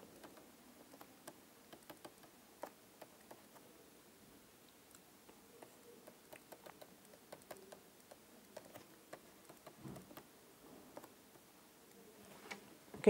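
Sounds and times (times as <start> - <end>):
stylus tapping on tablet: 0.2 - 3.6, 5.6 - 10.3.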